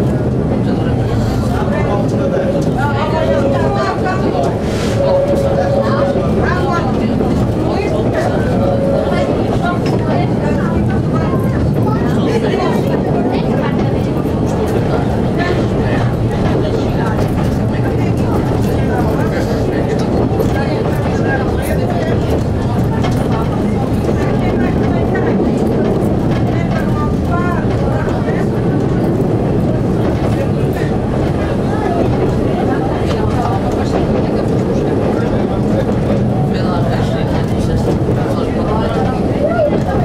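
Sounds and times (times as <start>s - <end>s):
diesel railcar engine: 0.0s - 40.0s
voices murmuring: 0.0s - 40.0s.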